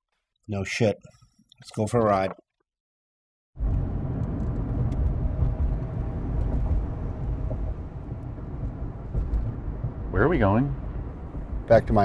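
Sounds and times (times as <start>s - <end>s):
car engine rumble: 3.6s - 12.0s
road noise: 3.6s - 12.0s.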